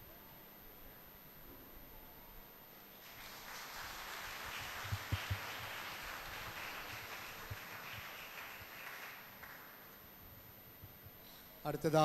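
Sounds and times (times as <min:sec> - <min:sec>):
soft applause: 0:02.9 - 0:10.4.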